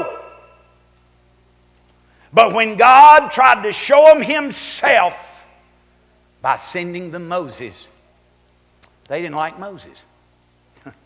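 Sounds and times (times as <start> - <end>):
man speaking with room echo: 0.0 - 0.8, 2.2 - 5.7, 6.4 - 8.2, 9.0 - 10.2
faint steady hum: 0.0 - 11.0.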